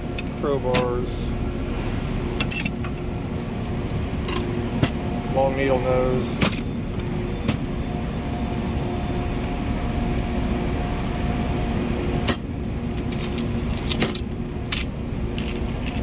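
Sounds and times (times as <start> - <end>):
steady hum with faint tone: 0.0 - 16.0
steel tools clinking in drawer: 2.4 - 2.8.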